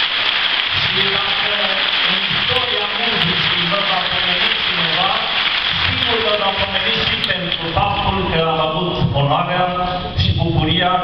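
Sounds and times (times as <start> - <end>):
audience applauding: 0.0 - 8.2
man talking: 0.8 - 11.0.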